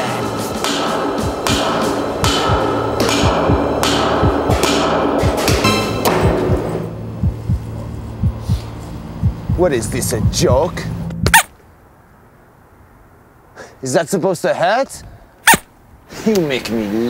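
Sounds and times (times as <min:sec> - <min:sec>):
low droning music: 0:00.0 - 0:11.3
bat banging on metal culvert: 0:00.6 - 0:06.9.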